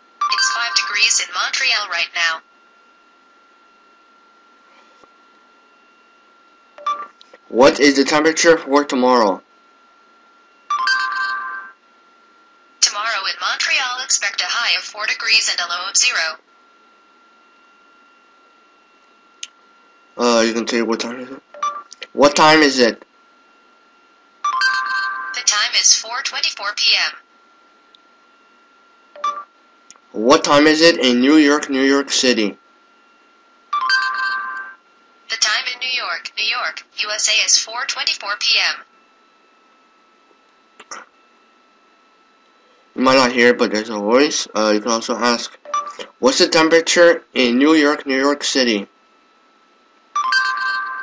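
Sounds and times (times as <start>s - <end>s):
faint hum: 0.0s - 51.0s.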